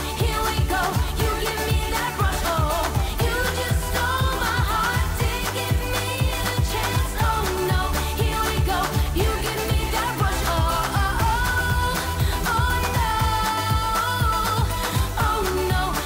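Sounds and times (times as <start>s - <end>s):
pop backing track with drum beat: 0.0s - 16.0s
woman singing into a microphone: 0.0s - 16.0s.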